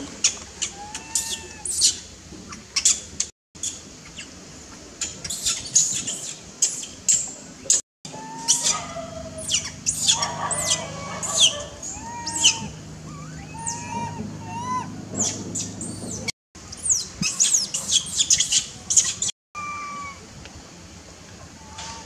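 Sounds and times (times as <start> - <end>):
birds chirping: 8.1 - 20.1
whistled bird calls: 8.1 - 20.2.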